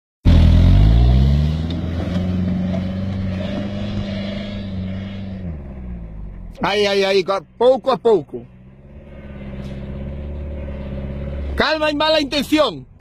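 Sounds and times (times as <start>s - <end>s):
car engine revving: 0.2s - 13.0s.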